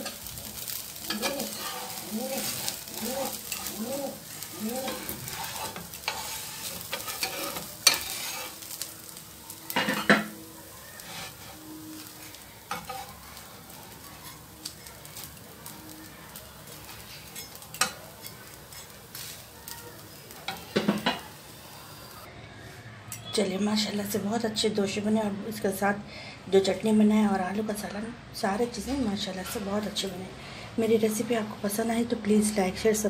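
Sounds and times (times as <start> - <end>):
metal spatula scraping pan: 0.0 - 10.4, 11.0 - 13.2
dosa sizzling on flat pan: 0.0 - 22.3.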